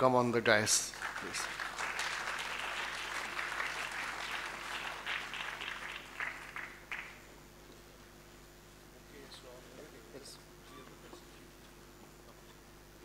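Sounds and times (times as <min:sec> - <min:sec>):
audience applauding: 0:00.9 - 0:07.3.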